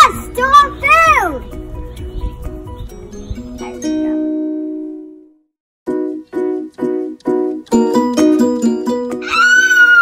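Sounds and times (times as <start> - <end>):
girl's high cry: 9.2 - 10.0.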